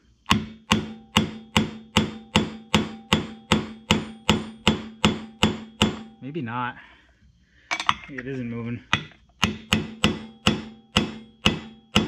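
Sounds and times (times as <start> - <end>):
hammer taps on metal engine: 8.9 - 12.0.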